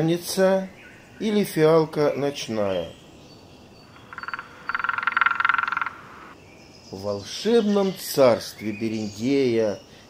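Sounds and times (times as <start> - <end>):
animal trilling call: 3.9 - 6.4.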